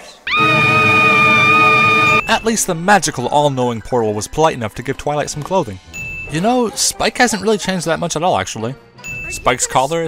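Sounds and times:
cartoon girl high scream: 0.2s - 2.2s.

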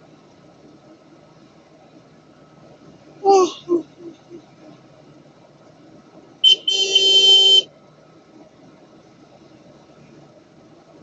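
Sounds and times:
vehicle horn beeping: 6.4s - 7.7s.

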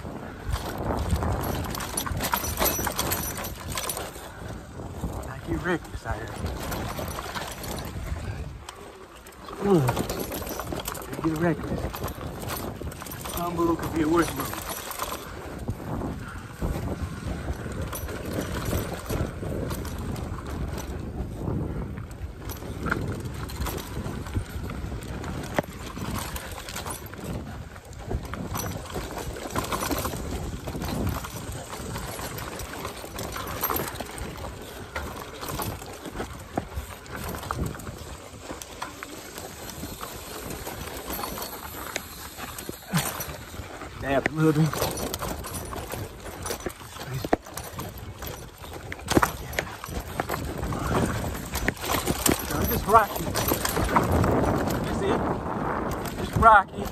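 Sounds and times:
bike knocking and rattling: 0.0s - 56.9s
bike tyres rumbling on dirt: 0.0s - 56.9s.

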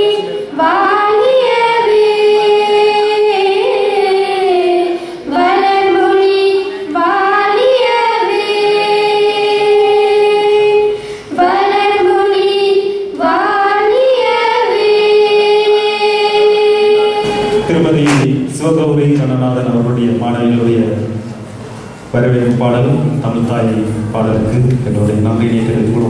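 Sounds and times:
girls singing together: 0.0s - 17.8s
singers breathing: 4.9s - 5.4s, 10.9s - 11.4s.

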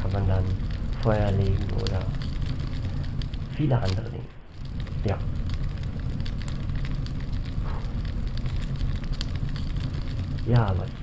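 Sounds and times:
flames crackling: 0.0s - 11.0s
low rumble: 0.0s - 11.0s.

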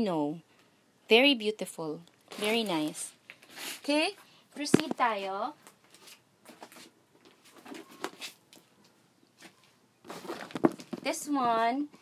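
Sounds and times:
faint rustling of bags: 2.0s - 12.0s.

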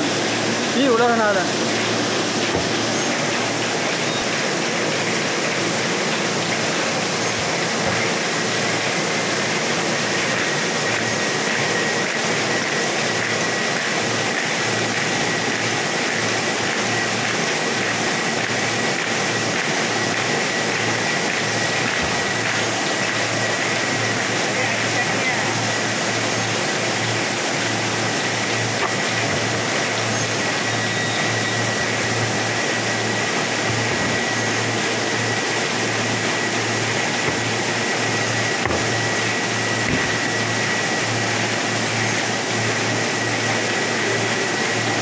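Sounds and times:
paper folding machine running: 0.0s - 45.0s.

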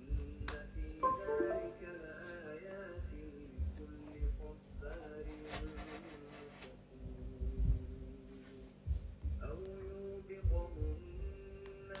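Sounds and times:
background music with melody: 1.0s - 2.5s.

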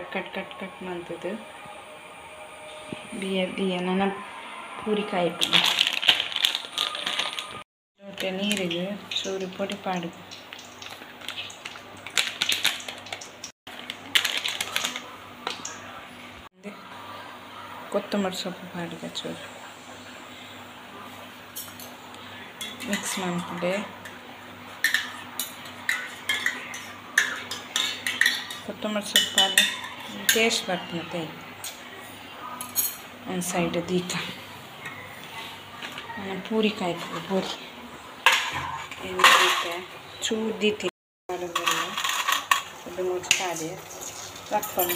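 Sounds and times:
plastic packet crinkling: 5.4s - 9.2s, 10.5s - 15.1s.

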